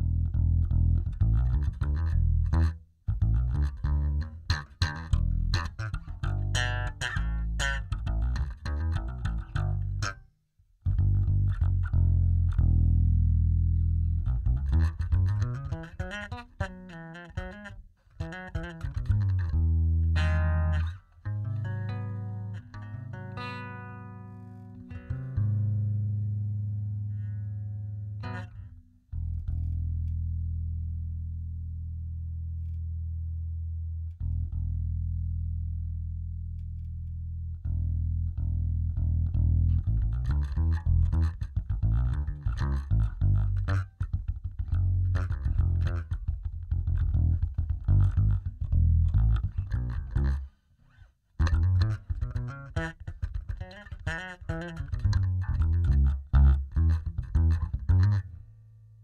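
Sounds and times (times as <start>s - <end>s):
electric bass notes: 0.0s - 59.0s.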